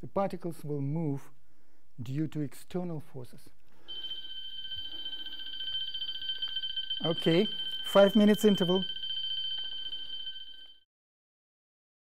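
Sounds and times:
electric bell ringing: 3.9s - 10.8s.

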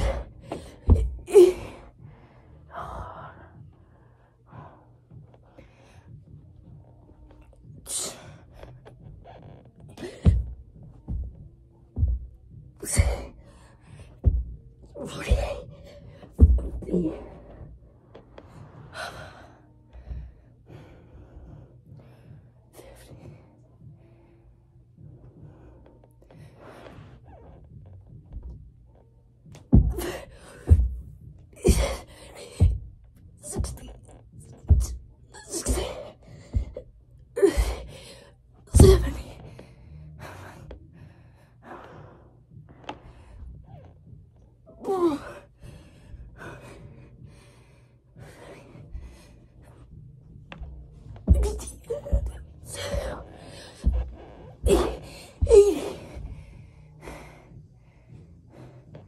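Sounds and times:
person breathing hard: 45.1s - 50.0s, 52.2s - 59.0s.

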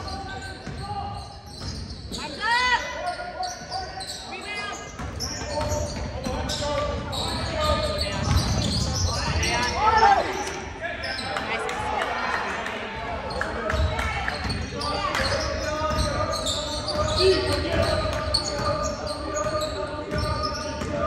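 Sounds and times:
sneakers squeaking on court: 0.0s - 10.0s, 13.3s - 21.0s
indistinct voices: 3.4s - 21.0s.

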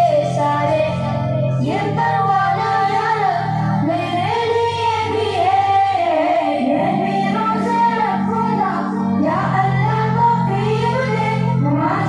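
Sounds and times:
children and woman singing: 0.0s - 12.0s
steady low backing music: 0.0s - 12.0s.

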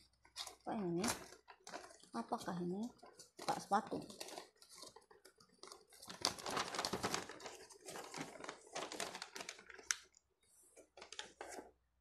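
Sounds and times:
wrapping paper crinkling: 0.0s - 10.2s, 10.8s - 11.8s.

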